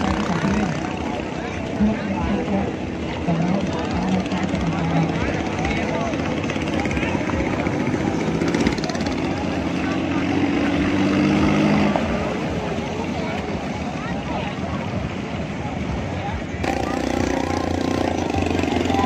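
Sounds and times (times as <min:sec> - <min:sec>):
boat engine running: 0:00.0 - 0:19.0.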